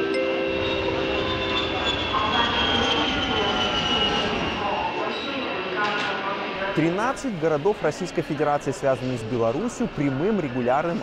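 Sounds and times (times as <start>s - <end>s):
high engine whine falling in pitch: 0.4s - 6.8s
low rumble: 0.5s - 6.7s.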